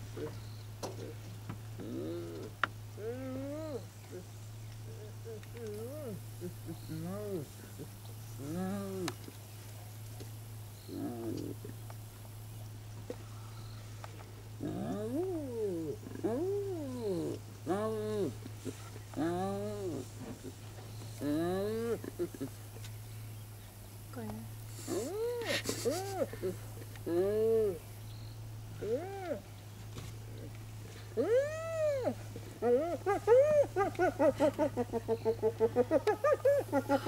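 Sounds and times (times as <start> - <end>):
hyena giggling: 21.3 - 22.8, 24.9 - 27.8, 32.0 - 37.0
hyena calling: 28.8 - 29.5, 30.4 - 37.0.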